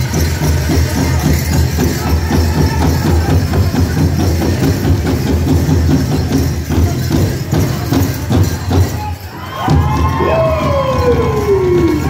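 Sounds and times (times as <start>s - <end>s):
big drum pounding: 0.0s - 9.0s
jingling bells: 0.0s - 12.0s.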